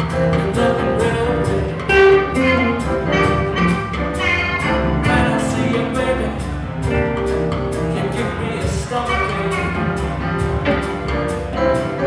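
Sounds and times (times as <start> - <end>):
live blues band: 0.0 - 12.0.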